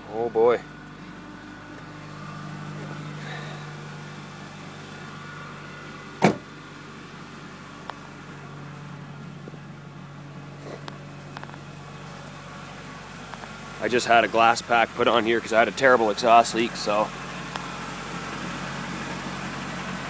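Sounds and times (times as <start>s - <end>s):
truck engine idling: 0.0s - 20.0s
loud thump: 6.2s - 6.5s.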